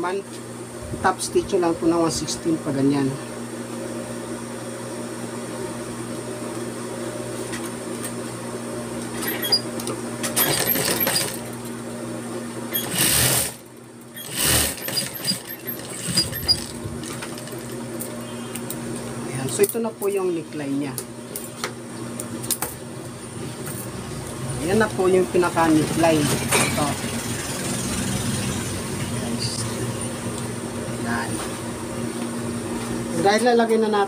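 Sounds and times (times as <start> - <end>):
sewing machine running: 10.2 - 11.5, 12.7 - 17.8.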